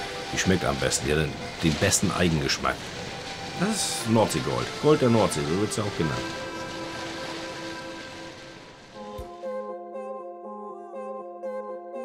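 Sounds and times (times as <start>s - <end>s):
steady hiss: 0.0s - 9.2s
soft background music: 0.0s - 12.0s.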